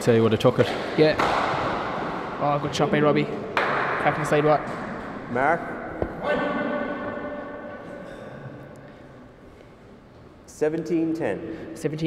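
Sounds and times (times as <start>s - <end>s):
sharp knock: 0.6s - 2.4s, 3.5s - 7.8s
steady pitched hum: 0.8s - 12.0s.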